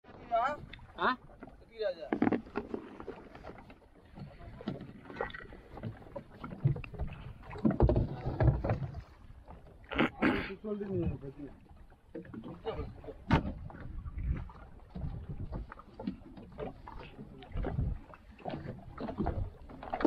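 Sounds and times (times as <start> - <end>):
water against boat: 0.0 - 20.0
wind: 0.0 - 20.0.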